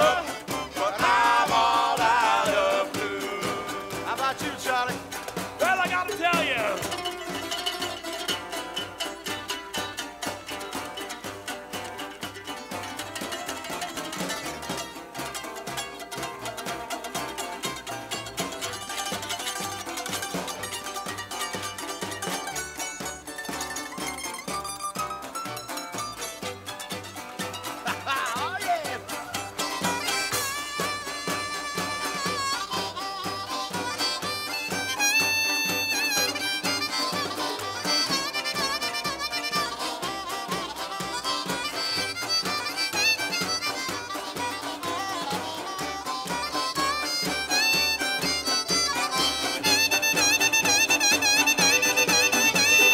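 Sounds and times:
upright bass notes: 0:00.0 - 0:12.0, 0:21.4 - 0:41.8
fiddle: 0:00.0 - 0:52.9
guitar: 0:00.0 - 0:52.9
harmonica lead: 0:00.0 - 0:52.9
plucked strings: 0:00.0 - 0:52.9.

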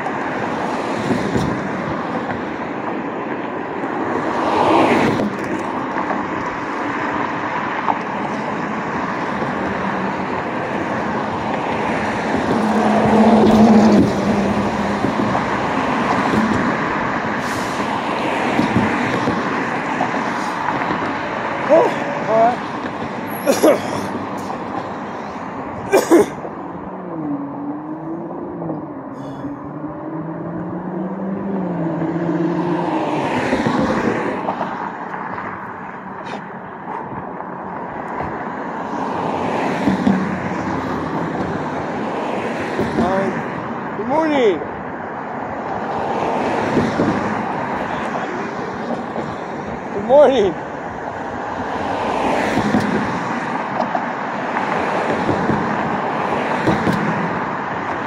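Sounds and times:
road traffic noise: 0:00.0 - 0:58.0.

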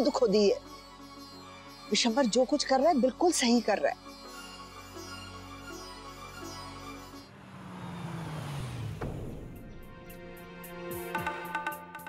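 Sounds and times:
car engine and tyre noise: 0:06.6 - 0:10.8.

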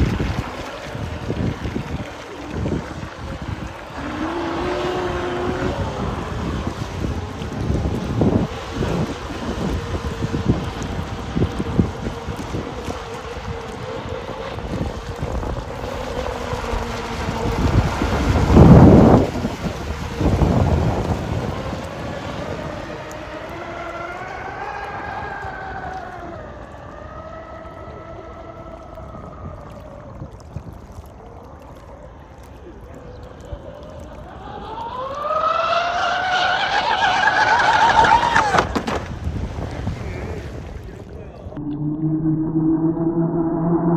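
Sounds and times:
wind on microphone: 0:00.0 - 0:35.3, 0:37.5 - 0:43.9.

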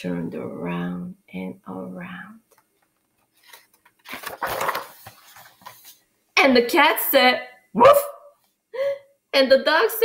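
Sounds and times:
book page turning: 0:02.6 - 0:06.1.

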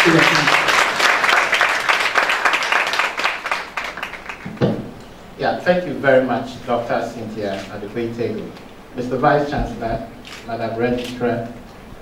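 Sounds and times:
audience applauding: 0:00.0 - 0:04.6.

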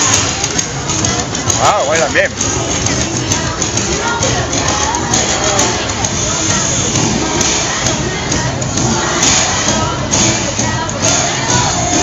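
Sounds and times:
crowd noise: 0:00.0 - 0:12.0
parade music over sound system: 0:00.0 - 0:12.0
person's voice: 0:01.5 - 0:02.4.

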